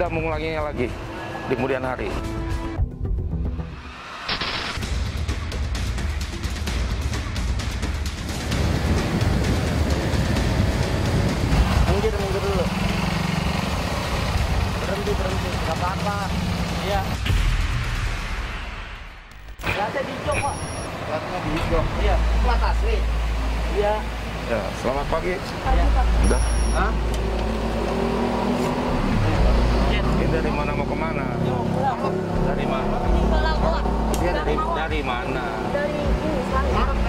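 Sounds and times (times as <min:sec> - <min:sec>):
road noise: 0:00.0 - 0:17.3, 0:18.5 - 0:37.0
motorcycle and scooter engines: 0:08.2 - 0:17.2, 0:19.7 - 0:37.0.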